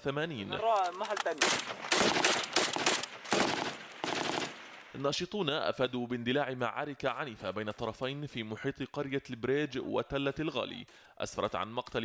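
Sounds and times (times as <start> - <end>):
assault rifle automatic fire: 1.3 - 4.9.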